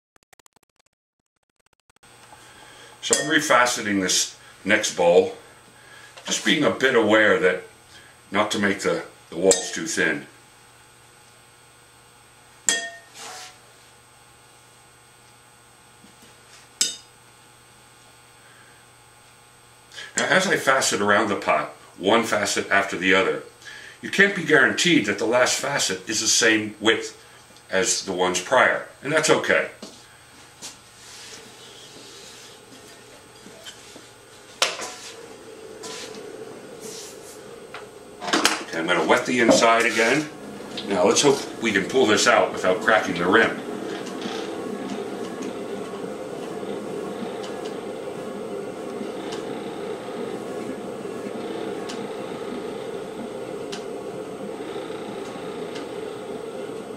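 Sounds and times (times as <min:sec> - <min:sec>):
low steady hum: 0:02.1 - 0:56.9
wire tool working clay: 0:31.0 - 0:56.9
man speaking: 0:38.7 - 0:43.7.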